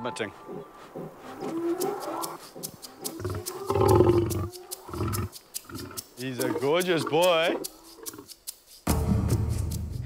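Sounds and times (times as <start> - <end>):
lions growling: 0.3 - 8.3.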